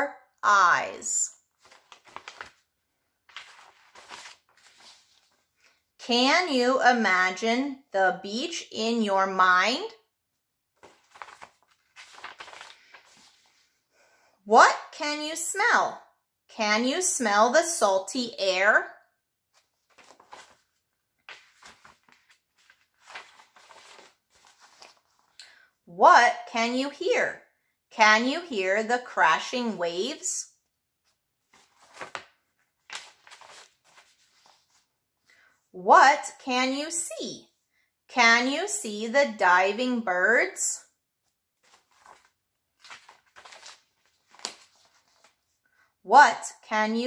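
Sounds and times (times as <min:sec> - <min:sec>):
paper page turning: 0:01.5 - 0:02.7, 0:03.3 - 0:05.5, 0:10.8 - 0:13.7, 0:19.5 - 0:25.4, 0:31.0 - 0:34.9, 0:41.2 - 0:45.6.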